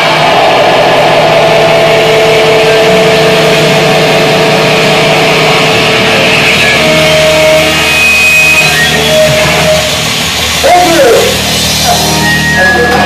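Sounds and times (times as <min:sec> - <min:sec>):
distorted electric guitar drone: 0:00.0 - 0:13.0.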